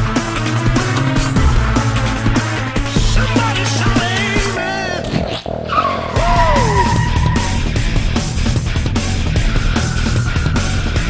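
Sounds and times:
loud hard rock music: 0.0 - 5.6
car tyres squealing: 0.0 - 11.0.

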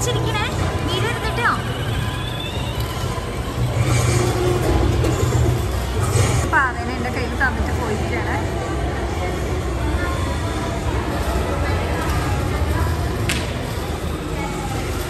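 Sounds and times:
people talking: 0.0 - 1.8, 6.4 - 15.0
shopping mall background hum: 0.0 - 15.0.

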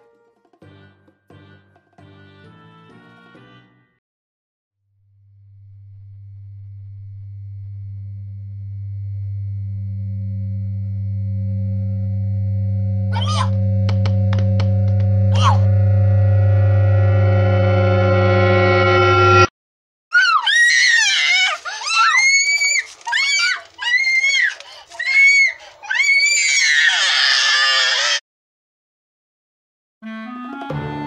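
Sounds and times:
low electronic drone: 5.1 - 19.5
young child shrieking: 13.2 - 13.5, 20.1 - 28.2.

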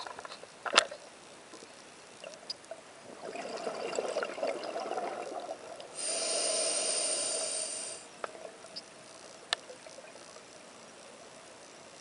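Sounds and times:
exhaled bubbles gurgling underwater: 3.0 - 7.6
hissing inhale through regulator: 5.9 - 8.1.

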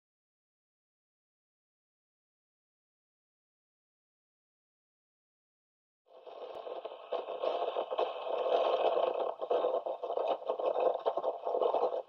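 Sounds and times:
radio static crackling: 6.1 - 12.0.

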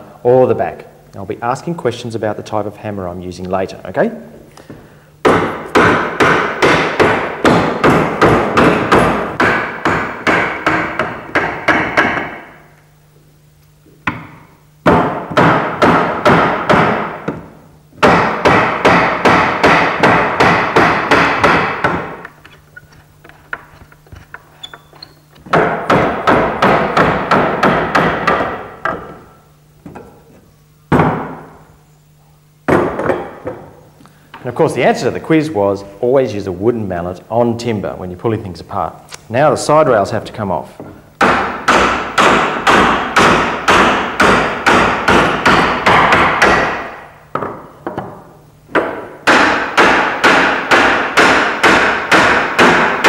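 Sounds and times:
wooden mallet striking chair frame: 5.2 - 12.6, 14.0 - 31.6, 32.7 - 33.8, 40.8 - 53.0.

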